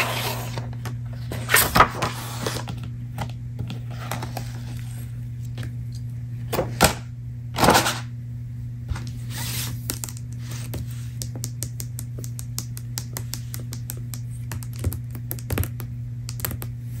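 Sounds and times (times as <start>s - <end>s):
steady low hum: 0.0s - 17.0s
fast tapping on paper book: 10.0s - 16.8s.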